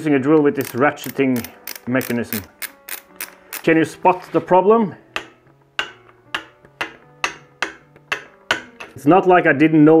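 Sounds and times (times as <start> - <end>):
faint background music: 0.0 - 10.0
ratcheting drill adapter clicks: 0.6 - 3.7.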